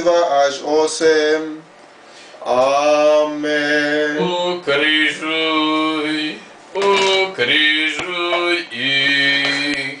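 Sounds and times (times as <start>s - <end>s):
men chanting: 2.5s - 10.0s.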